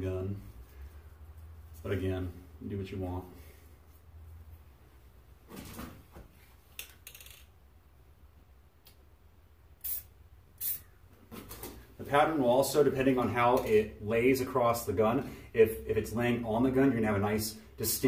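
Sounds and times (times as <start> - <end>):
spray paint can hissing: 9.8 - 10.9.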